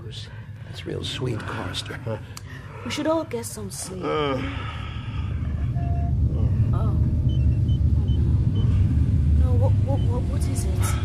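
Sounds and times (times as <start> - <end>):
deep rumbling drone: 0.0 - 11.0
high electronic bleeps: 5.8 - 8.8.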